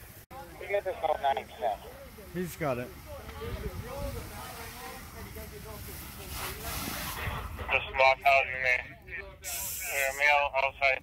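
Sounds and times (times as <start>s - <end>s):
steady hiss: 0.0s - 8.2s, 9.4s - 10.7s
faint voices talking: 0.3s - 11.0s
wind rumble on microphone: 3.3s - 4.6s.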